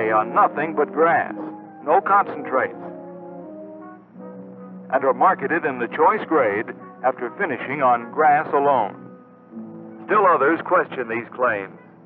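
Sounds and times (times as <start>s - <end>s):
orchestral music with held brass: 0.0s - 12.0s.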